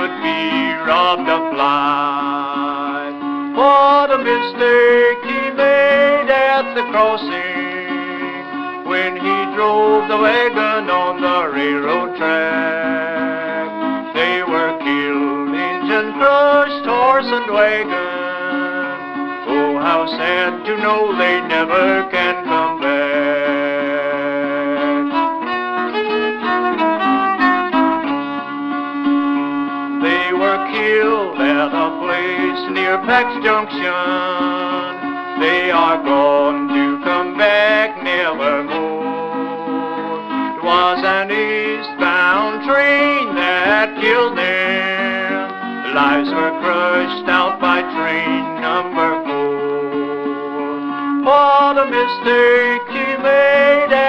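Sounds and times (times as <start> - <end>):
old-time fiddle melody with drone: 0.0 - 54.0
plucked string accompaniment: 0.0 - 54.0.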